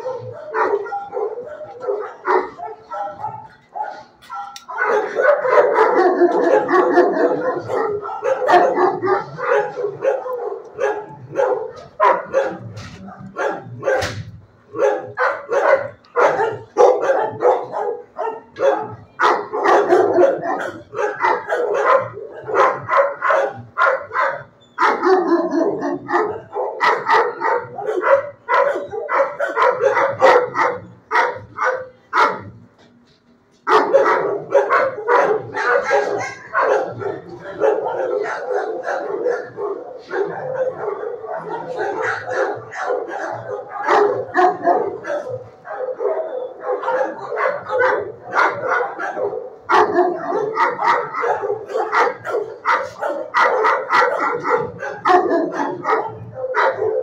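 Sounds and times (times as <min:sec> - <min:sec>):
dogs barking: 0:00.0 - 0:57.0.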